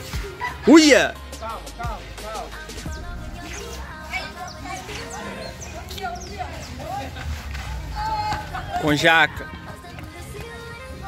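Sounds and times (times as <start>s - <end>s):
boys calling out: 0.4s - 1.2s.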